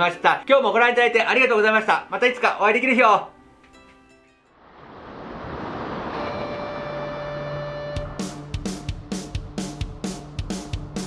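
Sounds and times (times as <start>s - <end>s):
ocean surf: 4.6s - 8.2s.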